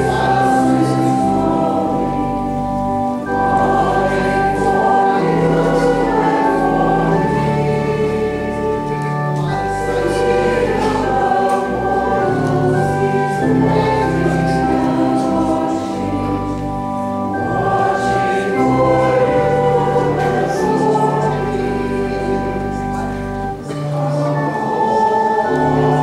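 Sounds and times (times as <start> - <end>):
slow hymn chords: 0.0 - 26.0
voices singing: 0.0 - 26.0.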